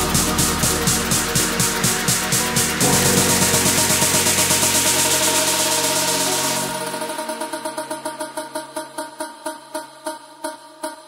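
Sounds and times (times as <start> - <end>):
electronic dance music: 0.0 - 11.0
pulsing synth pattern: 0.0 - 11.0.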